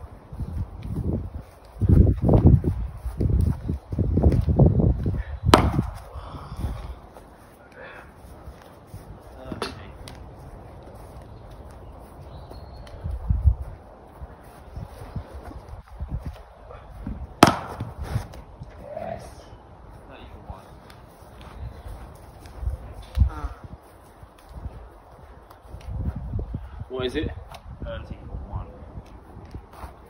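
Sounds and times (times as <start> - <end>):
wind on microphone: 0.0 - 7.4, 11.3 - 19.9, 20.5 - 30.0
bat striking ball: 5.5 - 6.0, 17.4 - 18.4.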